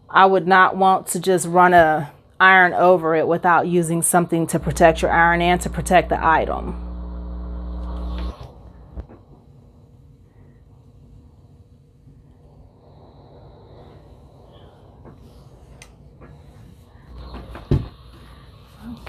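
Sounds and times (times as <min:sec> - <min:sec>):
low hum: 0:02.2 - 0:19.0
steam iron sliding over fabric: 0:07.3 - 0:09.0
knock: 0:17.4 - 0:17.9.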